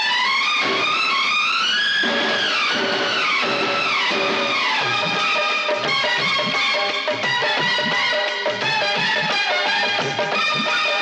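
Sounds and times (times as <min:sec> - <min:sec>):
film song with dance beat: 0:00.0 - 0:11.0.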